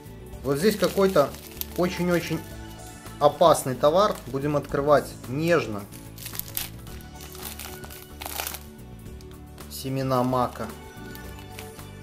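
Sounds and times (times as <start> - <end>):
background music: 0.0 - 12.0
plastic mailer crinkling: 0.6 - 2.4, 6.1 - 8.6, 10.1 - 11.8.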